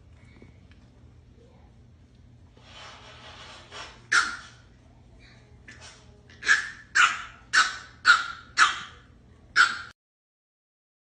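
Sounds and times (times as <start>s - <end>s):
puppy yapping: 4.1s - 4.6s, 6.3s - 10.0s.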